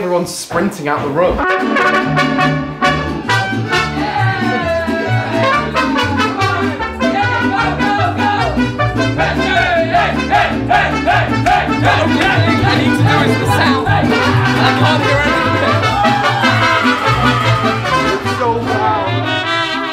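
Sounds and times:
strummed guitar: 0:01.4 - 0:19.9
trumpets: 0:01.4 - 0:19.9
bass guitar line: 0:01.6 - 0:19.7.

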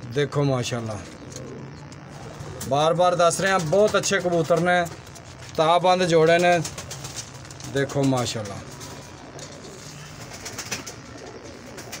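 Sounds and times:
pigeons cooing: 0:00.6 - 0:12.0.

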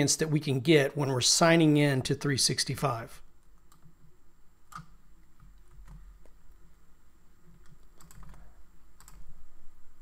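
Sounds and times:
faint keyboard typing: 0:03.4 - 0:06.6, 0:07.4 - 0:09.4.

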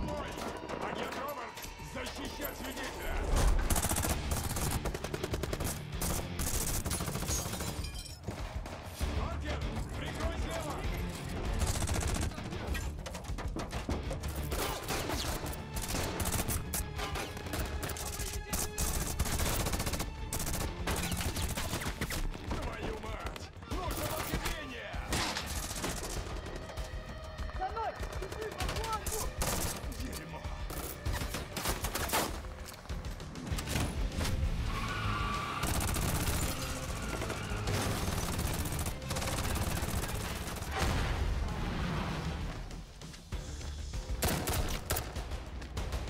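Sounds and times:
rapid rifle and automatic gunfire: 0:03.3 - 0:09.0, 0:10.0 - 0:34.1, 0:35.6 - 0:40.9, 0:44.0 - 0:46.0.

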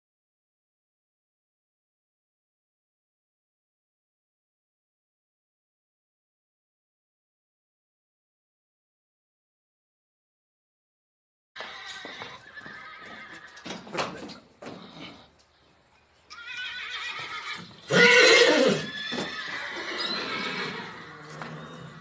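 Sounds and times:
horse whinnying: 0:11.6 - 0:14.4, 0:16.3 - 0:22.0.

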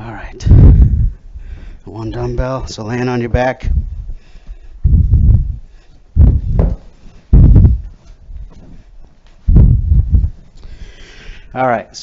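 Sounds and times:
body thumping on wooden floor: 0:06.2 - 0:08.9.

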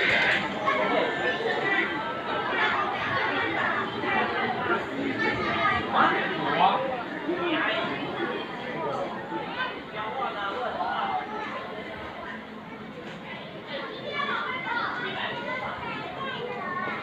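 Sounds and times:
indistinct chatter of voices: 0:00.0 - 0:17.0.

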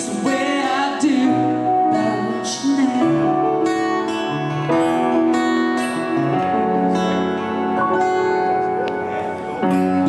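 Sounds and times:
live band music: 0:00.0 - 0:10.0
strummed acoustic guitar: 0:00.0 - 0:10.0.

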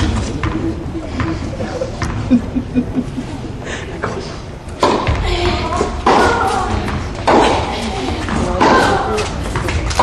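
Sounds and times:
tennis ball hit by racket: 0:04.8 - 0:10.0.

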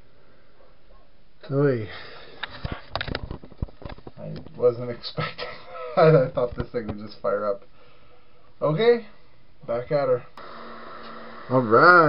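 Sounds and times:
camera handling clicks and knocks: 0:02.9 - 0:04.1.

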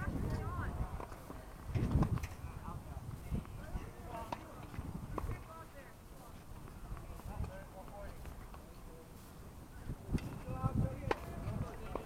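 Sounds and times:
tennis ball bouncing: 0:11.0 - 0:11.3.

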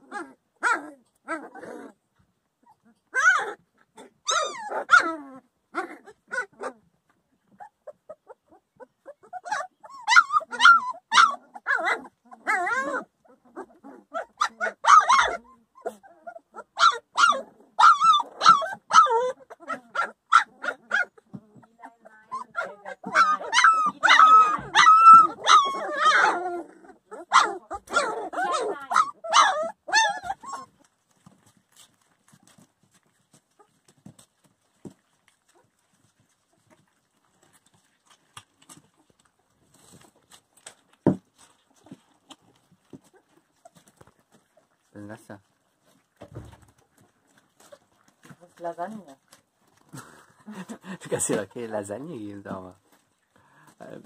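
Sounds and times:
puppies whining and yipping: 0:02.6 - 0:32.4, 0:41.4 - 0:44.9, 0:45.8 - 0:48.0.

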